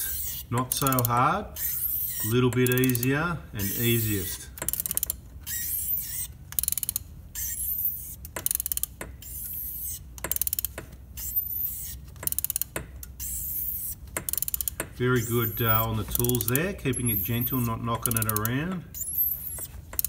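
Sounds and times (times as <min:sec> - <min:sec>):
ratchet wrench clicking: 0:00.0 - 0:20.0.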